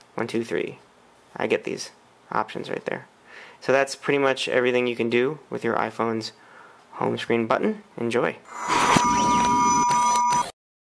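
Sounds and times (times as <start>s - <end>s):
noisy hum: 0.0s - 10.5s
electronic buzzing tone: 8.5s - 10.6s.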